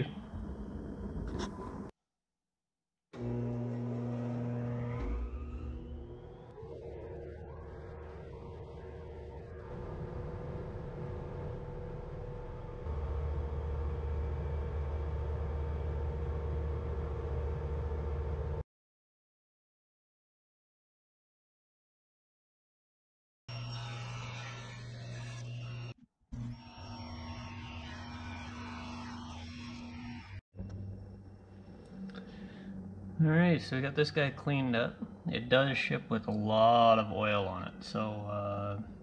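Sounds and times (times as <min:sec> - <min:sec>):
low hum: 0:03.2 - 0:18.6, 0:27.2 - 0:39.0
thickness planer motor whining: 0:03.2 - 0:18.6, 0:23.5 - 0:30.8.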